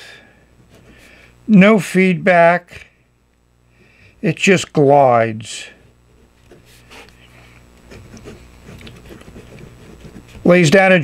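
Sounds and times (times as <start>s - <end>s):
low steady hum: 0.0s - 11.0s
pen nib scratching on paper: 7.8s - 10.5s.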